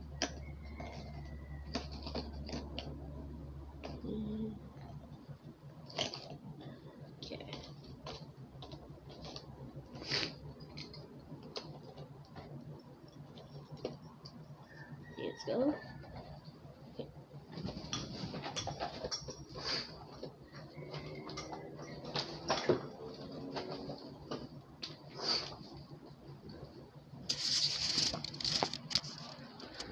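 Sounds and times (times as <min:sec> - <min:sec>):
ornaments rustling: 0:27.1 - 0:29.9.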